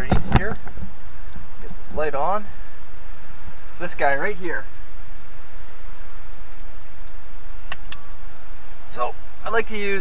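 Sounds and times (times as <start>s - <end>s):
wind buffeting microphone: 0.0s - 1.6s.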